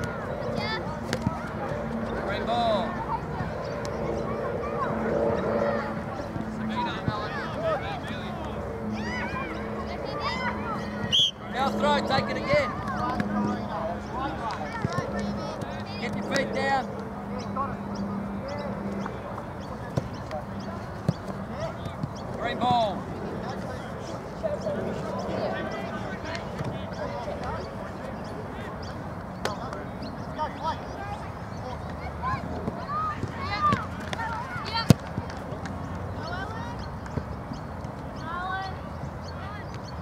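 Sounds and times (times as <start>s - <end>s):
outdoor background noise: 0.0s - 40.0s
players calling and shouting: 0.0s - 40.0s
distant girls shouting: 8.9s - 11.2s.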